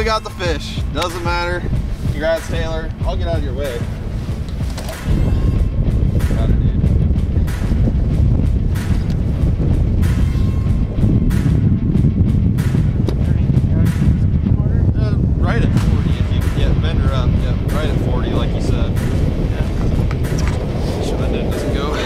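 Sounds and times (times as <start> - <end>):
strong wind buffeting microphone: 0.0 - 22.0
scattered clicks and knocks: 4.5 - 5.2, 17.6 - 21.9.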